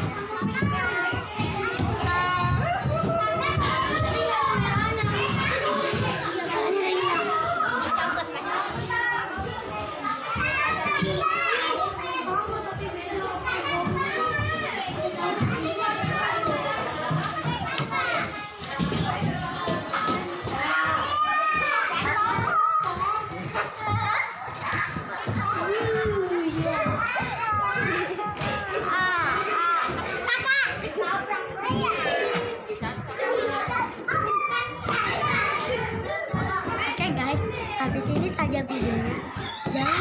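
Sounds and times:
children talking and calling: 0.0 - 40.0.

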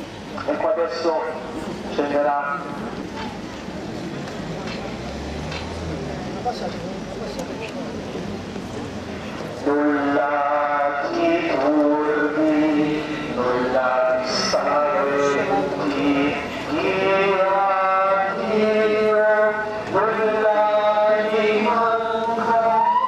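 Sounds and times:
low murmur: 0.0 - 22.9
person singing a slow chant: 9.6 - 23.0.

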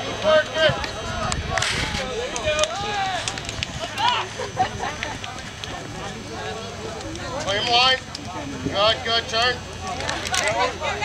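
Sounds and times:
people shouting: 0.0 - 6.9.

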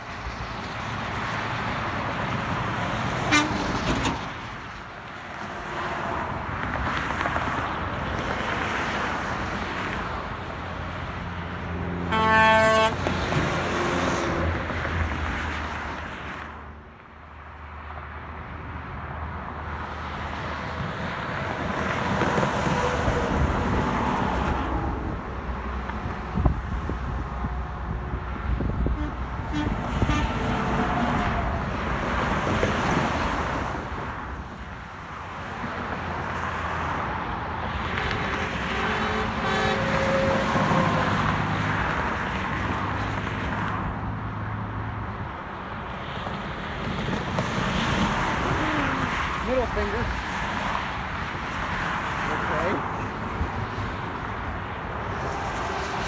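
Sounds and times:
highway traffic passing: 0.0 - 56.0
truck air horn: 3.2 - 4.2, 12.0 - 14.2, 28.9 - 31.2, 37.9 - 41.1.

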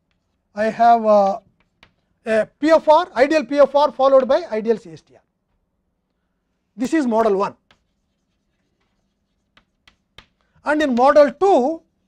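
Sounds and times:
chalk tapping on blackboard: 0.0 - 0.4, 1.2 - 2.1, 7.2 - 11.5
chalk scratching on blackboard: 6.9 - 12.0.

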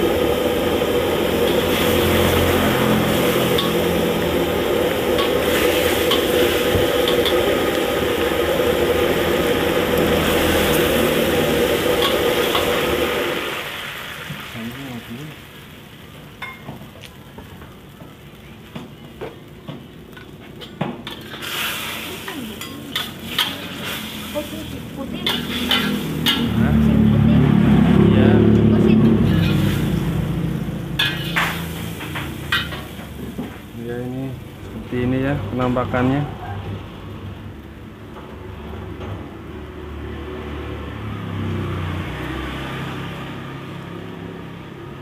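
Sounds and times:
loud steady rushing noise: 0.0 - 15.1, 21.5 - 33.5
sauce sizzling and bubbling in wok: 0.0 - 45.0
ladle scraping against wok: 1.4 - 8.8, 10.0 - 13.3, 20.2 - 26.6, 29.2 - 30.2, 31.0 - 33.6.

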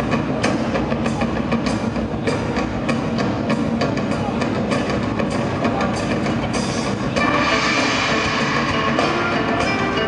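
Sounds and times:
drum strikes: 0.0 - 10.0.

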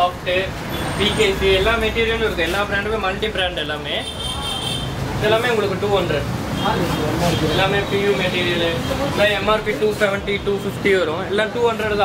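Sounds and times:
man talking: 5.2 - 12.0.

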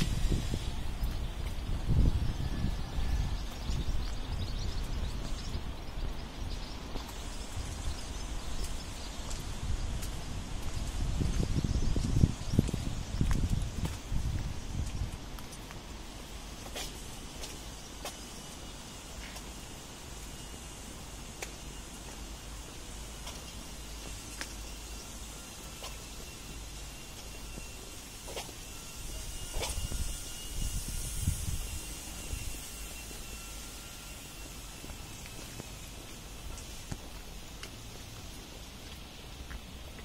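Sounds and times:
faint footsteps on pavement: 0.0 - 40.0.

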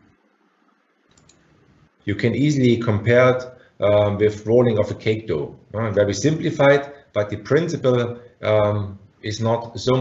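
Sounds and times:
faint clicks: 1.1 - 1.5.

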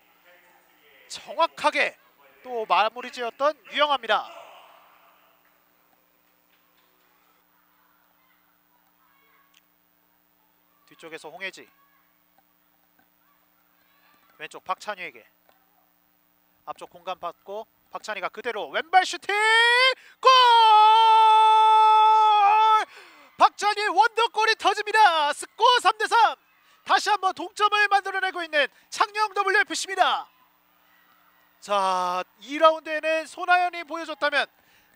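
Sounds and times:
faint low hum: 0.0 - 19.2
commentator shouting goal: 18.7 - 30.3.

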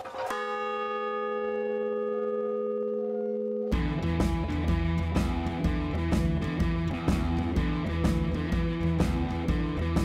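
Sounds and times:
large bell ringing: 0.0 - 4.9.

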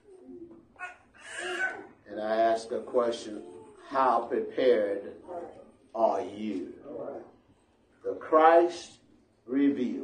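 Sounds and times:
man speaking: 2.0 - 7.4, 8.0 - 10.0.

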